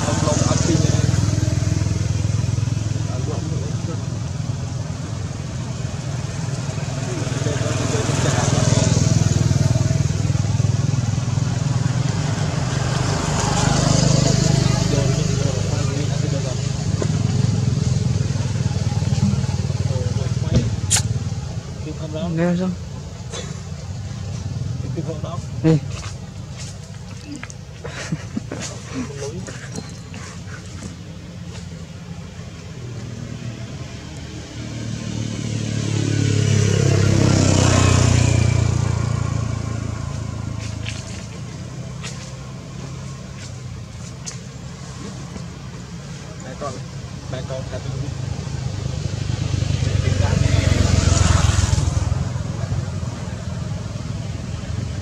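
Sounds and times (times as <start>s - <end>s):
motor vehicles passing by: 0.0s - 55.0s.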